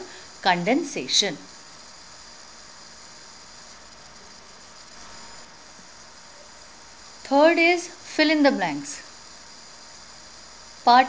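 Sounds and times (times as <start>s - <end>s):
microphone and room hiss: 0.0s - 11.0s.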